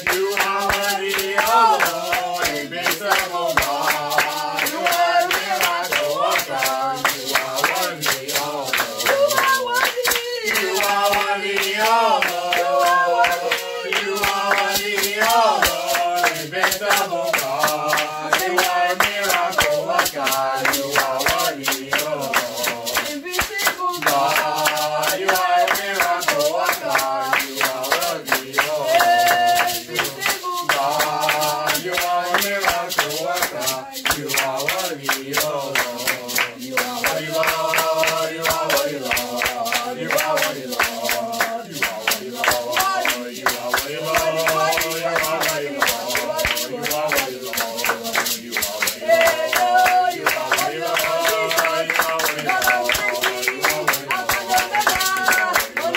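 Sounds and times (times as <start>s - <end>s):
hands clapping to a beat: 0.0s - 55.9s
man singing worship song: 0.0s - 55.9s.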